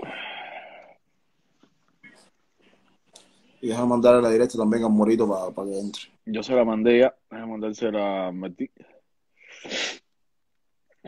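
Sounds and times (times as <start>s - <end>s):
short breathy burst: 9.4s - 10.1s.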